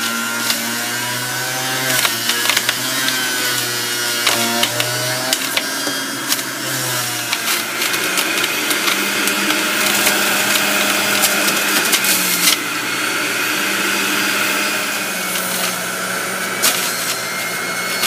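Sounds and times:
juicer motor humming: 0.0s - 18.0s
produce shredding clicks and knocks: 1.7s - 12.6s.

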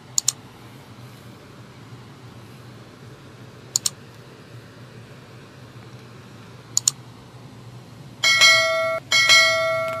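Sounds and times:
notification bell chime: 8.2s - 10.0s.

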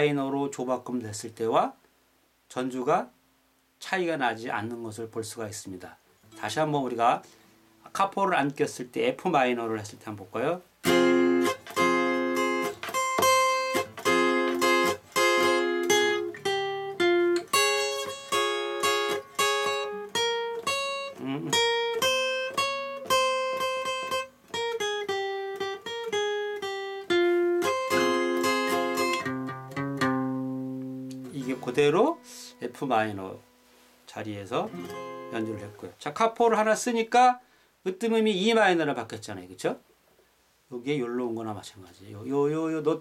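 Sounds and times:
acoustic guitar ballad: 10.8s - 34.0s, 34.6s - 36.0s.

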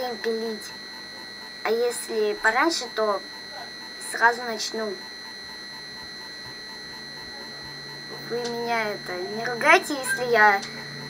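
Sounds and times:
electrical whine and low hum: 0.0s - 11.0s.

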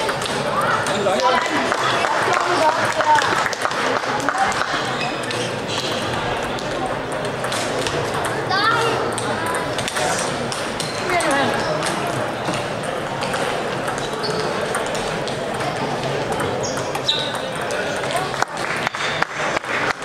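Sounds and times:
crowd chatter: 0.0s - 20.0s
table tennis balls clicking: 0.0s - 20.0s.

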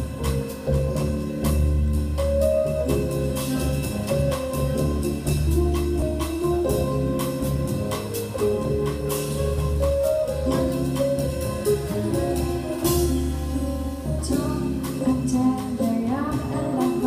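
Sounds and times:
drum kit steady beat: 0.0s - 17.0s
upright bass: 0.0s - 17.0s.

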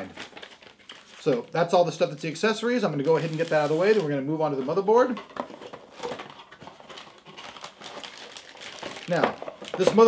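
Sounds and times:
plastic bag rustling: 0.0s - 1.6s, 2.8s - 10.0s.

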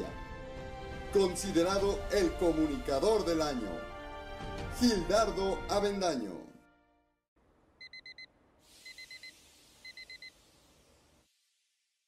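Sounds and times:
alarm clock beeping: 7.8s - 9.3s
faint hiss: 8.4s - 12.0s.

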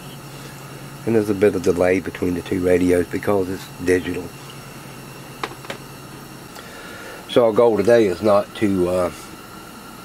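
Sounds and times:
low workshop hum: 0.0s - 10.0s.

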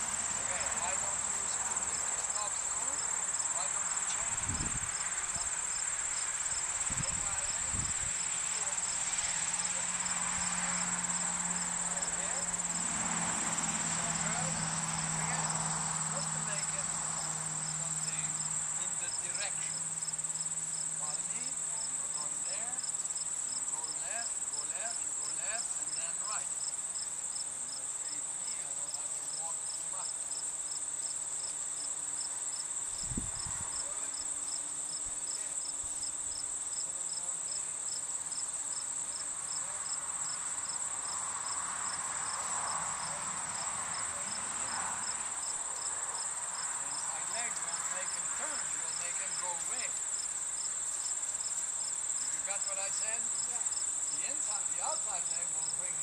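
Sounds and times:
crickets chirping: 0.0s - 56.0s.

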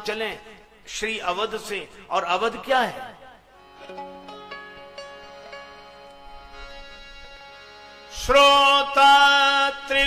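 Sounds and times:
slow instrumental notes ringing: 3.6s - 8.2s.

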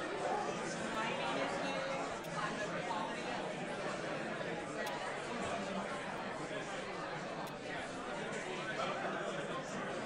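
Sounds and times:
many people chattering: 0.0s - 10.0s.

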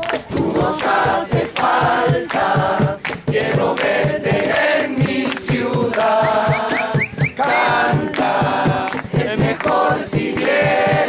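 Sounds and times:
group singing: 0.0s - 11.0s
hands clapping: 0.0s - 11.0s.

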